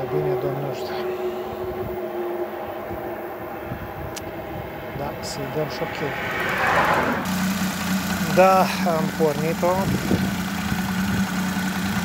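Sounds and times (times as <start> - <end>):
small car engine idling: 6.5 - 12.0.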